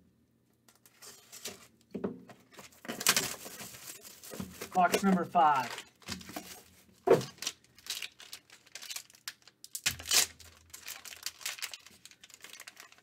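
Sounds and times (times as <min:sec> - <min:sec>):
foil wrapper crinkling and tearing: 0:02.8 - 0:06.7, 0:07.3 - 0:13.0.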